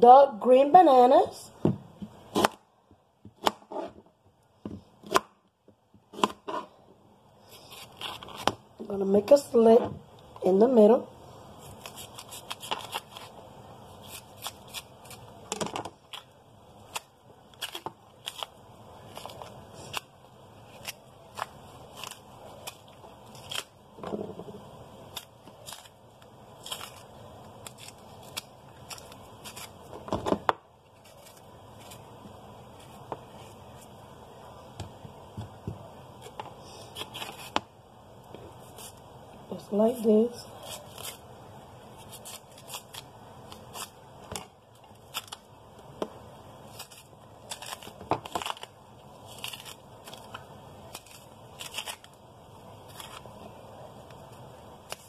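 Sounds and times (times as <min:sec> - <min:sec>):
knife peeling bananas: 0:07.5 - 0:08.6, 0:11.6 - 0:24.4, 0:25.0 - 0:33.9, 0:36.2 - 0:37.7, 0:39.9 - 0:41.3, 0:41.9 - 0:45.5, 0:46.6 - 0:52.2, 0:52.8 - 0:53.6.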